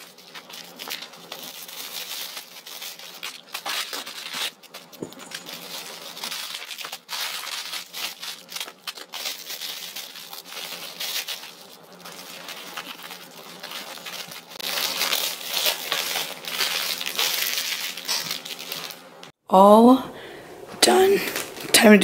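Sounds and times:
cellophane bag crinkling: 0.0 - 19.3.

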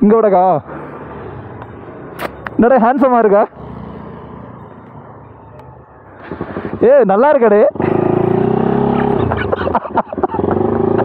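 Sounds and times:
road and vehicle engine noise: 0.0 - 11.0.

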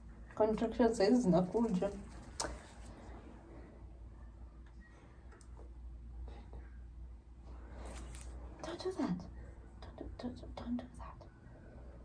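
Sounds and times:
person whispering: 9.8 - 11.4.

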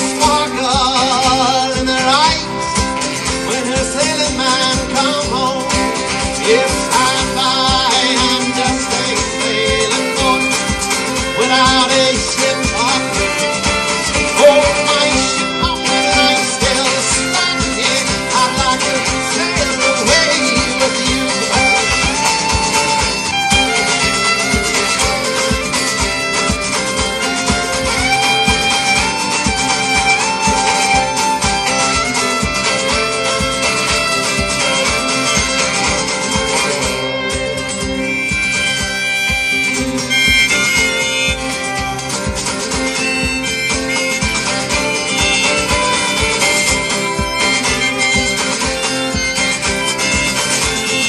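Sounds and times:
fiddle: 0.0 - 51.0
guitar: 0.0 - 51.0
live band playing instrumental: 0.0 - 51.0
steady drum beat: 0.0 - 51.0.

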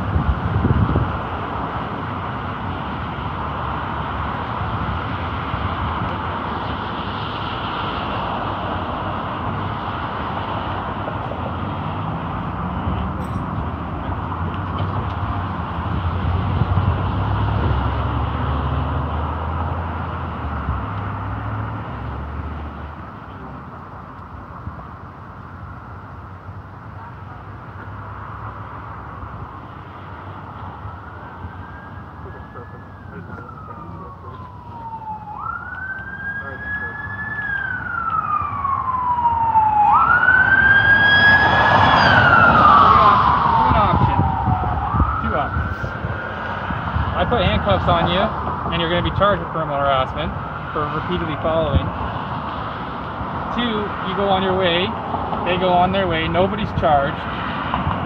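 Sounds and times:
vehicle engine rumble: 0.0 - 58.0.

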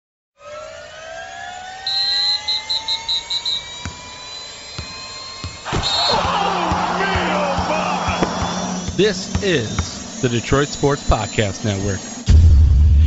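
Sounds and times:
rising whine: 0.4 - 13.0
fast high beeping: 0.7 - 12.3
hit sound effect: 12.3 - 13.0.

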